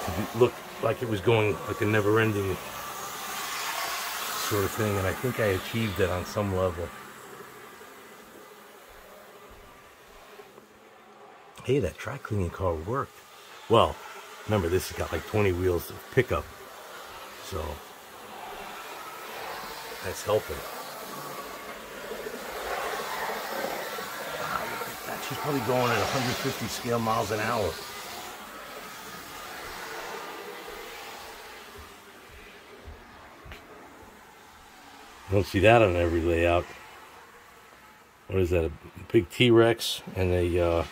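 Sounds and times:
model train motor whirring: 0:00.0 - 0:11.0, 0:11.6 - 0:32.1.

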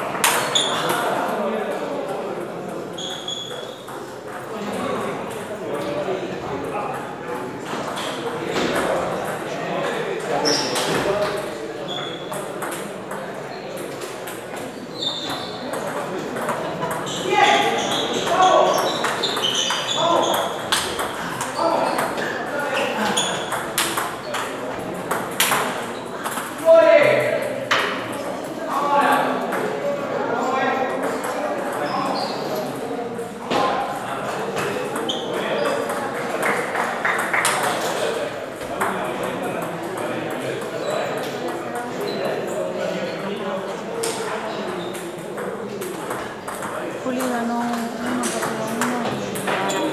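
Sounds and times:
chatter of voices: 0:00.0 - 0:49.9.

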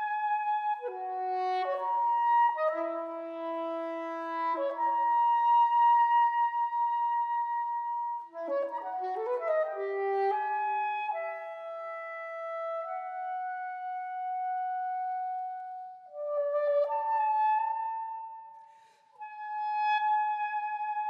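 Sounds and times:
soprano saxophone playing: 0:00.0 - 0:18.6, 0:19.2 - 0:21.0.

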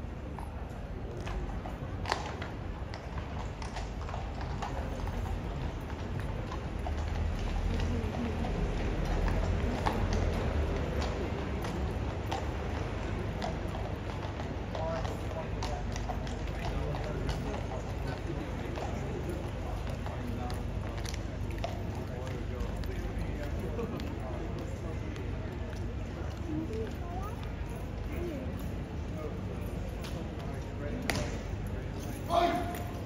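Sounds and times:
hooves clip-clopping on stone: 0:00.0 - 0:33.0
murmur of voices: 0:03.7 - 0:33.0.

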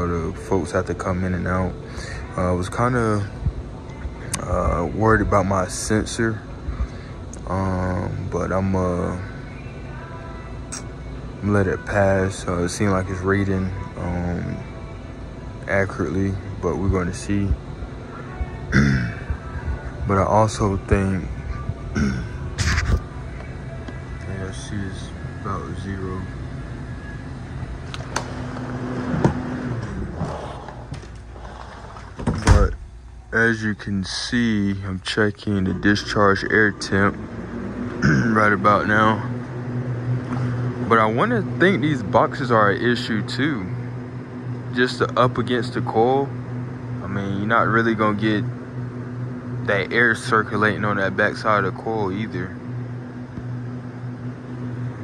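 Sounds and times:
low machinery hum: 0:00.0 - 0:55.0.

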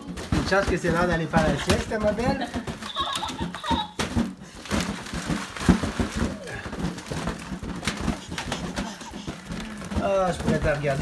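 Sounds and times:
balloons and streamers tapping: 0:00.0 - 0:11.0
baby babbling: 0:08.2 - 0:09.7.

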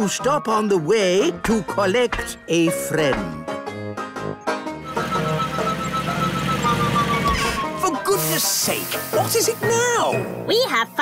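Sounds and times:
background music: 0:00.0 - 0:11.0
flying saucer hum: 0:04.9 - 0:07.7.

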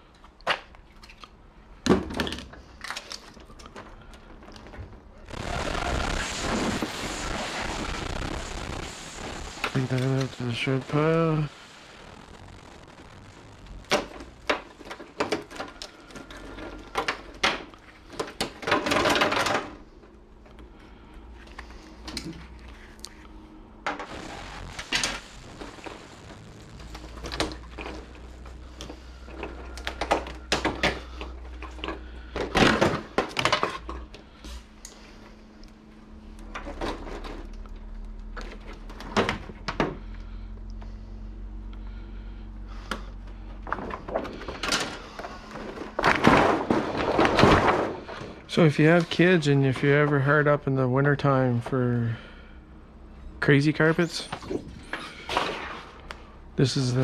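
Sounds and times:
crackling rustle of plastic: 0:02.6 - 0:39.2, 0:43.2 - 0:50.6
plastic sheets clacking: 0:13.8 - 0:19.8, 0:43.6 - 0:50.2.

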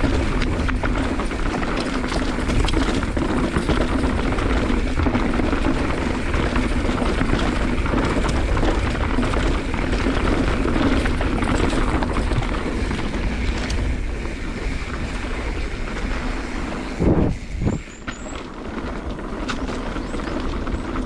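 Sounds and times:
bike chain rattling: 0:00.0 - 0:21.0
bike jolts: 0:00.0 - 0:21.0
tyre noise on dirt: 0:00.0 - 0:21.0
wind rushing over microphone: 0:06.1 - 0:18.1.

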